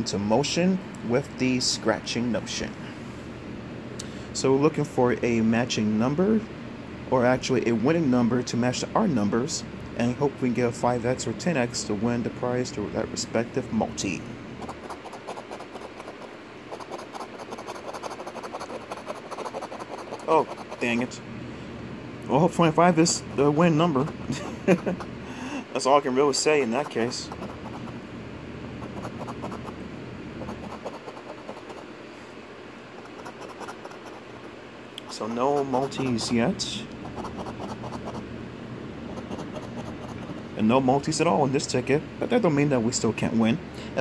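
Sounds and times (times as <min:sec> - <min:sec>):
coin scraping scratch-off ticket: 0:14.6 - 0:21.1, 0:30.5 - 0:31.8, 0:33.0 - 0:34.2, 0:35.1 - 0:36.4, 0:37.0 - 0:38.2, 0:39.1 - 0:40.3.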